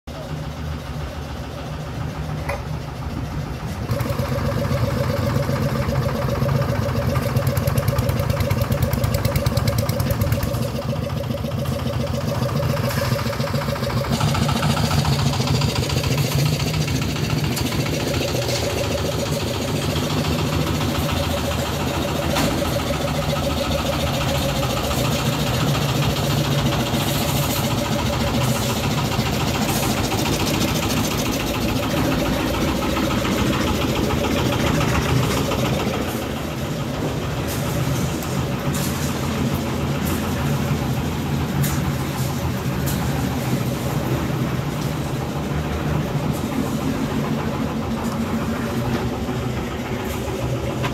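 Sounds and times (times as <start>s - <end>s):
concrete mixer engine running: 0.1s - 50.9s.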